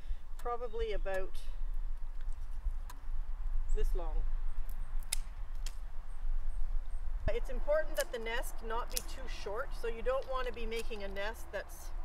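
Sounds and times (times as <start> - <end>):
secateurs snipping reed stem: 4.6 - 5.8, 7.8 - 11.4.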